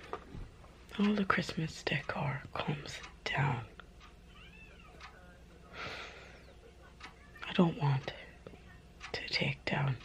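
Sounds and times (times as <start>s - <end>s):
cat meowing: 4.3s - 5.1s.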